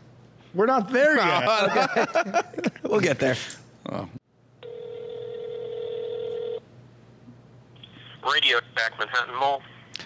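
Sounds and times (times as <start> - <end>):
telephone ringback tone: 4.6 - 6.6.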